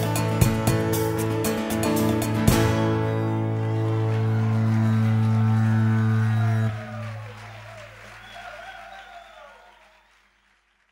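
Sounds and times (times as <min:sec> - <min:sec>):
faint crowd cheering: 0:03.0 - 0:10.9.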